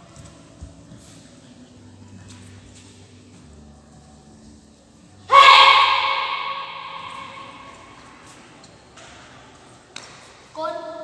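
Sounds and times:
child's sharp shout echoing: 0:05.3 - 0:07.9.

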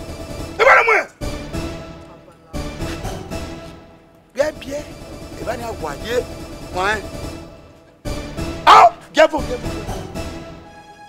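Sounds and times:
background music: 0:00.0 - 0:11.0
dog barking: 0:00.6 - 0:01.1, 0:08.7 - 0:09.1.

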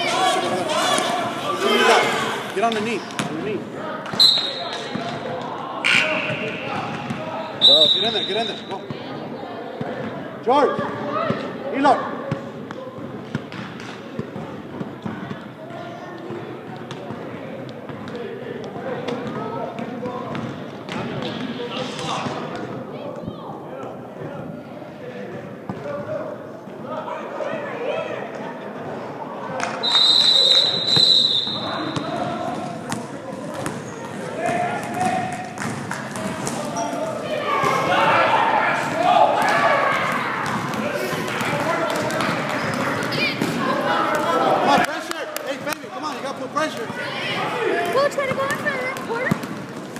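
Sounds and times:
spectators talking and calling out: 0:00.0 - 0:49.9
shrill whistle blast: 0:04.2 - 0:04.6, 0:07.6 - 0:08.7, 0:29.8 - 0:32.0
basketball bouncing on gym floor: 0:40.4 - 0:43.6, 0:48.2 - 0:49.8.

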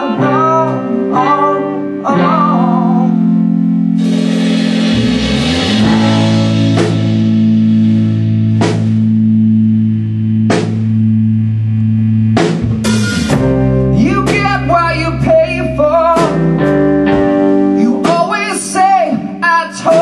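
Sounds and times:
rock band playing: 0:00.0 - 0:20.0
cymbal crashes: 0:04.0 - 0:07.7.

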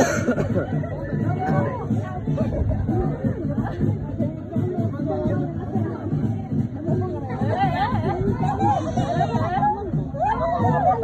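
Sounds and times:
people chattering and calling out: 0:00.0 - 0:11.0.

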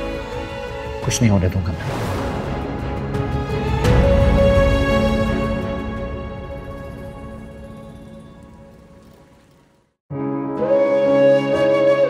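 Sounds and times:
background music sustained tones: 0:00.0 - 0:12.0.

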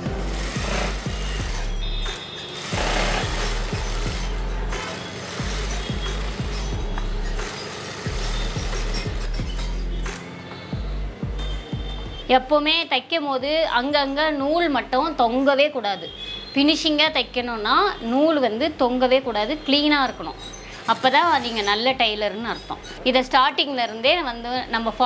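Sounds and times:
sewing machine stitching: 0:00.0 - 0:09.8, 0:20.7 - 0:22.0.

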